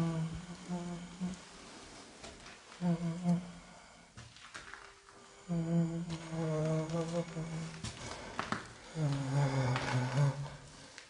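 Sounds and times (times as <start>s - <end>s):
man humming low: 0.0s - 1.4s, 2.8s - 4.0s, 5.4s - 8.0s, 8.9s - 10.6s.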